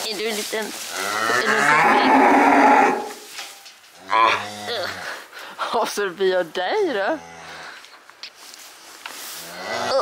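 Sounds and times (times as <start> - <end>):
calf mooing: 1.0 - 3.2.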